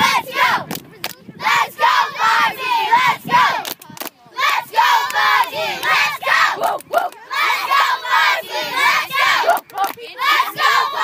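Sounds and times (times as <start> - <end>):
children chanting in unison: 0.0 - 0.6, 1.4 - 3.6, 4.4 - 11.0
clapping: 9.5 - 10.0.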